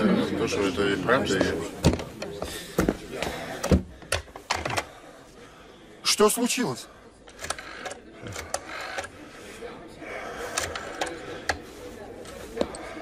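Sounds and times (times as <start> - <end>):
rotary phone dial clicking and whirring: 7.3 - 9.2, 10.4 - 11.7.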